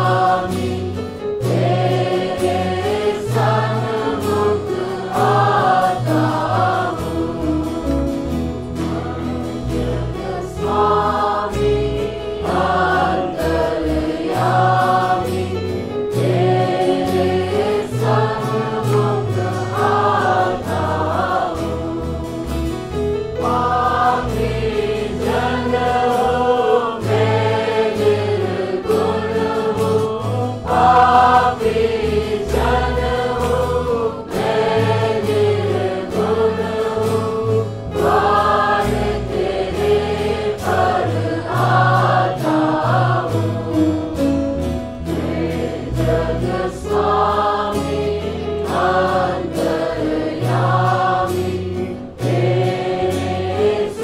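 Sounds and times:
bass-heavy instrumental accompaniment: 0.0 - 53.8
choir singing gospel song: 0.0 - 54.0.

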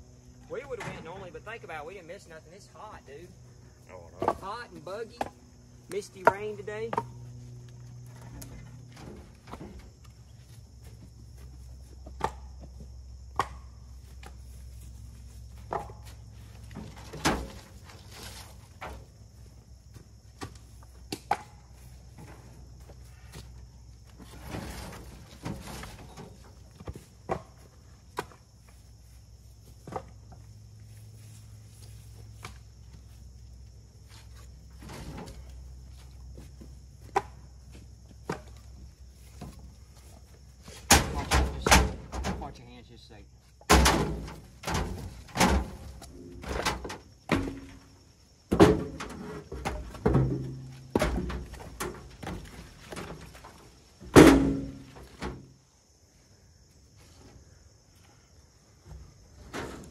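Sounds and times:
logs knocking on wood: 4.2 - 7.2.

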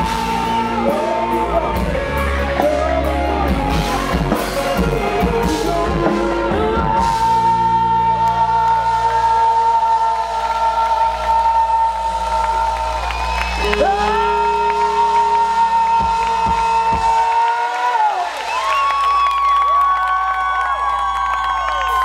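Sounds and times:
live rock band: 0.0 - 22.0
crowd cheering: 8.1 - 22.0.

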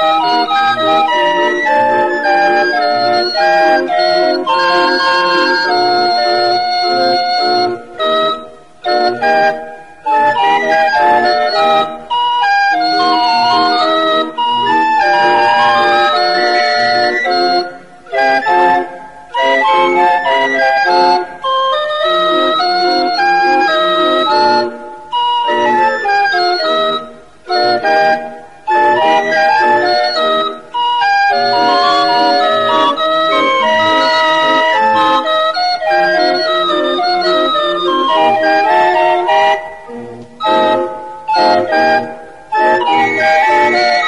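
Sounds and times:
barrel organ playing a tune: 0.0 - 44.0.

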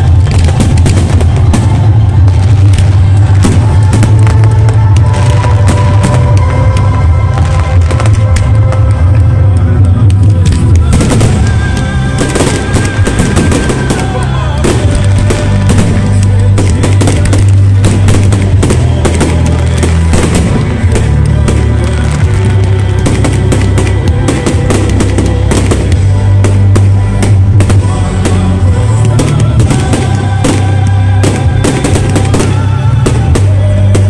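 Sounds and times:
fireworks crackling and banging: 0.0 - 34.0
loud music with heavy bass: 0.0 - 34.0.

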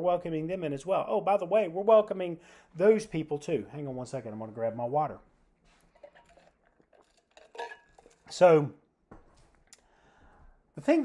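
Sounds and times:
man drinking: 5.7 - 8.3
metal tumbler clink: 6.0 - 8.3.

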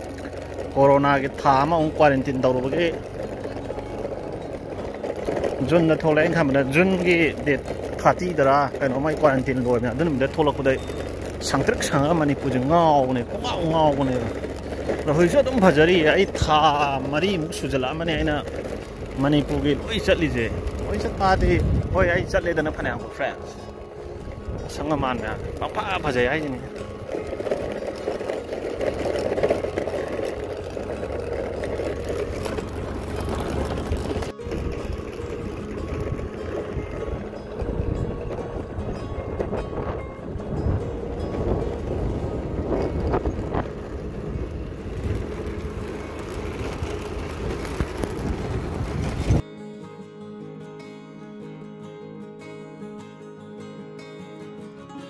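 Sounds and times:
road and vehicle noise: 0.0 - 49.5
wind rumble: 10.6 - 49.4
person speaking: 11.4 - 23.7, 24.7 - 26.8
wind rushing on microphone: 20.5 - 22.6, 35.8 - 45.8, 46.5 - 49.4
motor running: 23.4 - 49.4.

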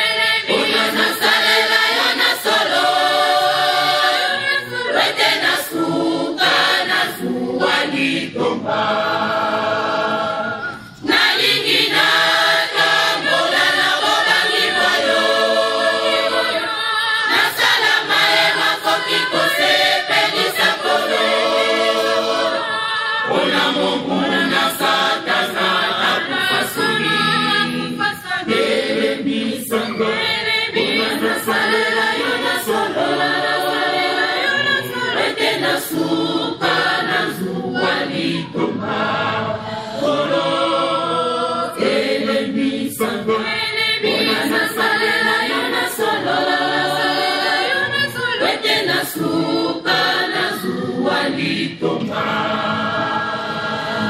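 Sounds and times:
women's choir singing: 0.0 - 54.0.

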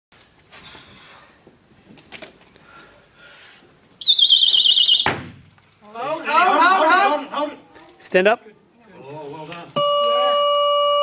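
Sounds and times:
shrill wavering whistle: 4.0 - 5.2
sharp thud: 5.0 - 5.5.

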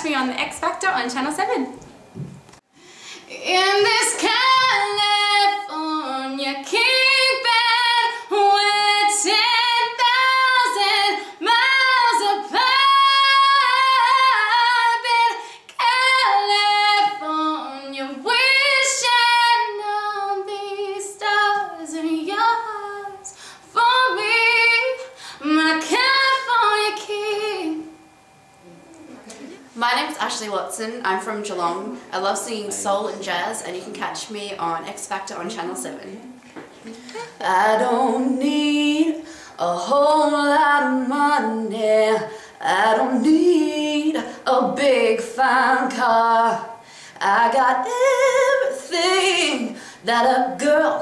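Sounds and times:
singer breathing: 2.7 - 3.3, 23.3 - 23.7, 25.0 - 25.4, 39.2 - 39.6, 46.8 - 47.2, 49.7 - 50.0
woman singing unaccompanied: 3.3 - 28.0, 29.8 - 51.0.

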